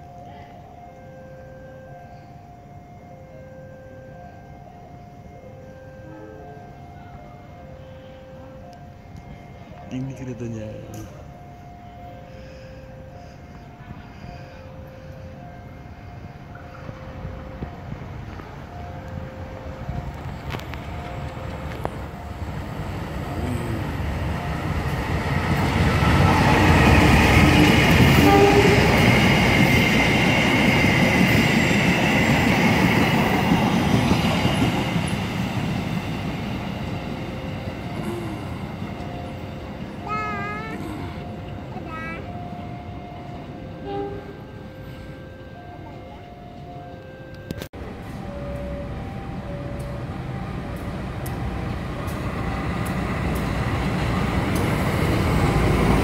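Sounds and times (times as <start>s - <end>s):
passing train rumble: 0.0s - 56.0s.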